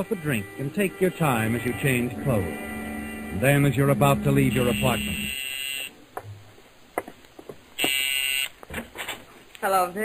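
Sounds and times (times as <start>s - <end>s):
door buzzer: 3.2s - 5.9s, 7.8s - 8.5s.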